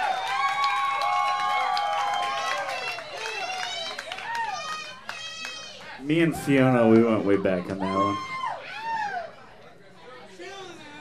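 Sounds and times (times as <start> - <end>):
faint audience chatter: 2.9 - 11.0
man's voice over a pa: 6.0 - 8.2.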